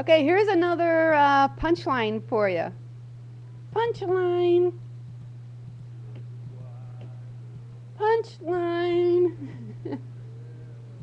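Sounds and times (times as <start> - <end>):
steady low hum: 0.0 - 11.0
faint murmur: 6.0 - 11.0.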